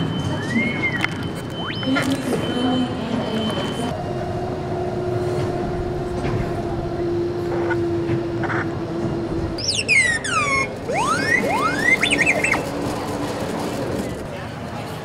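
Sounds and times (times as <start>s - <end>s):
robot beeps and whistles: 0.2s - 2.6s, 9.6s - 12.7s.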